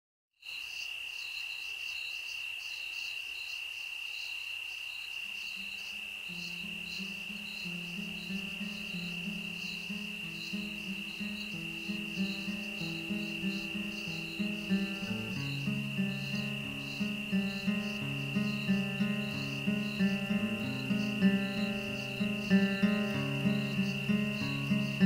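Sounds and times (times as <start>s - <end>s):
crickets chirping: 0.4s - 25.0s
slow low melody of held notes: 6.4s - 25.0s.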